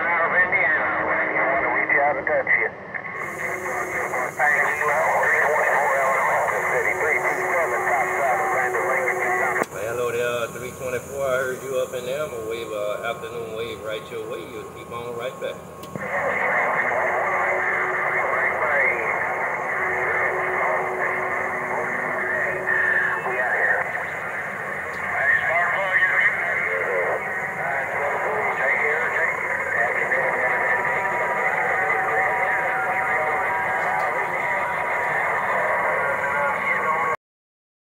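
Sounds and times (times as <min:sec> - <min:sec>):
garbled voices over radio: 0:00.0 - 0:37.2
steady radio tones: 0:00.0 - 0:37.2
radio crackle: 0:01.8 - 0:37.2.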